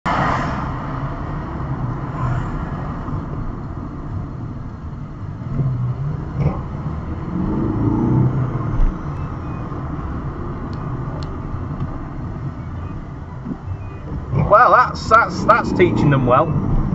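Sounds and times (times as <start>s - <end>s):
car engine drone: 0.0s - 16.9s
road rumble: 0.0s - 16.9s.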